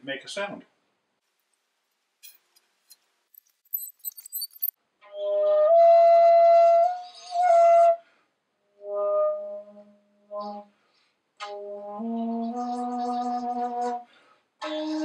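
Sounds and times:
flute notes: 5.0 - 8.0, 8.8 - 10.7.

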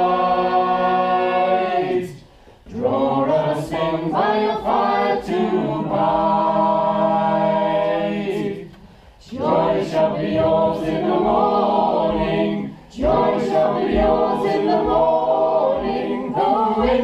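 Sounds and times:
choir singing a carol: 0.0 - 17.0.

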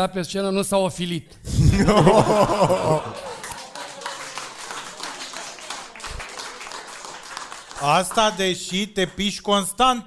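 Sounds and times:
audience applauding: 1.8 - 9.3.

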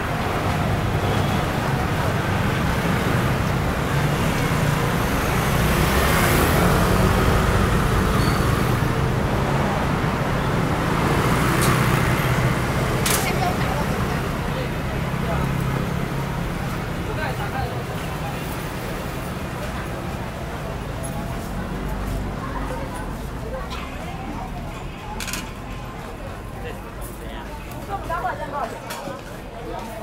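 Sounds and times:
cars and scooters passing: 0.0 - 30.0
people chattering: 0.0 - 30.0.

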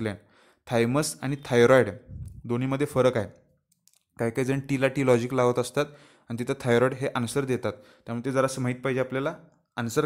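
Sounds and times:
man speaking: 0.0 - 3.4, 4.2 - 10.0.

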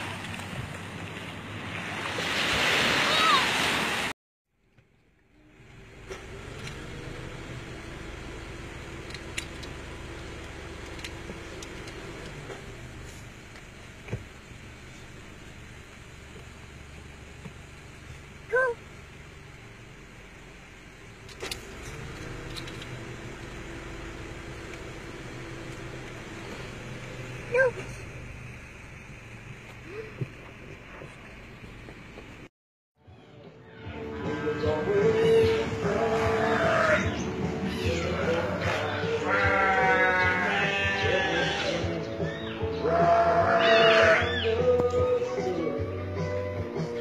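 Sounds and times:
car engine idling: 4.5 - 32.5, 34.3 - 43.0.

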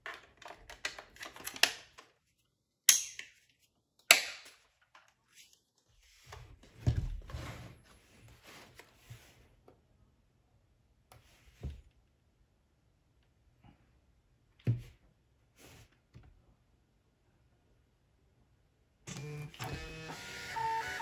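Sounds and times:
plastic clicks and rattles: 0.0 - 2.2
sharp plastic snaps: 4.0 - 5.1.

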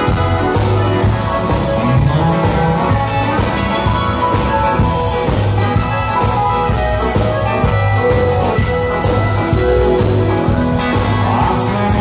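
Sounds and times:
live band playing instrumental: 0.0 - 12.0.

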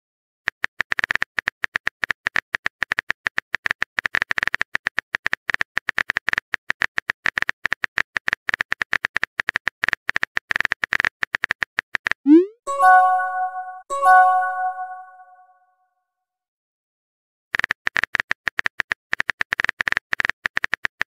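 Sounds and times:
rapid typing clicks: 17.6 - 21.0.

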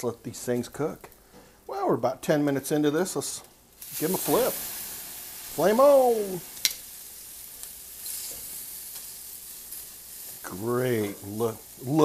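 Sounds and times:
meat sizzling on a grill: 3.7 - 12.0.

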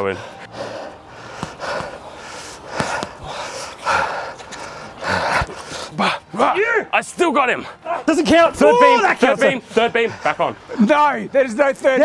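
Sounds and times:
men panting: 0.0 - 6.6, 7.4 - 12.0.

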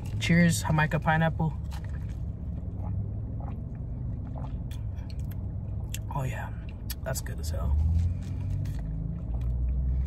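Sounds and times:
low rumble in car cabin: 0.0 - 10.0
person sipping and swallowing: 1.6 - 7.0.

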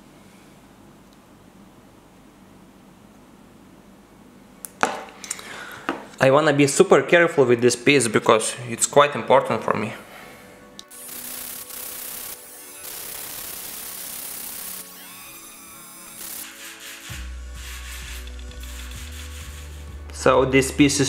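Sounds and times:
rotary tool sanding hiss: 10.8 - 20.1
background music with bass: 17.1 - 21.0.

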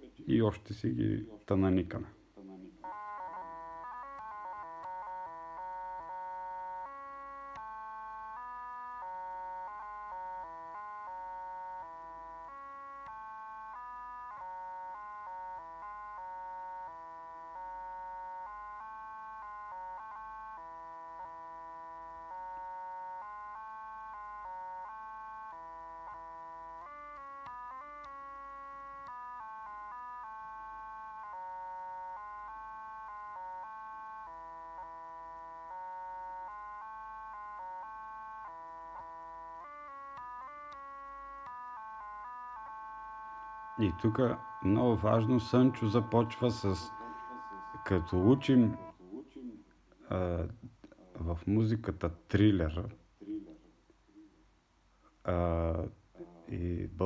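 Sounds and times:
synthesized bagpipe melody: 0.0 - 49.0, 55.2 - 55.9.

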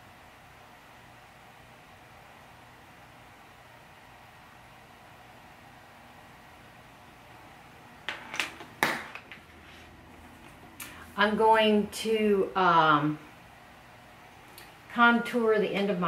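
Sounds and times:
faint room hiss: 0.0 - 16.0
makeup items knocking and rustling: 8.1 - 9.5.

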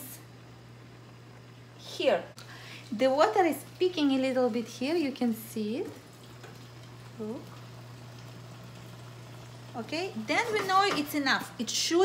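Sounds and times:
soft bubbling of simmering pan: 2.4 - 12.0.

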